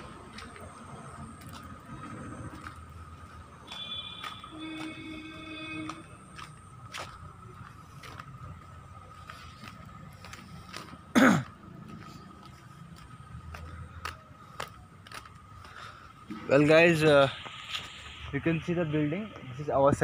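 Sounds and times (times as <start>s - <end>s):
faint background noise: 0.0s - 20.0s
man coughing: 11.1s - 11.6s.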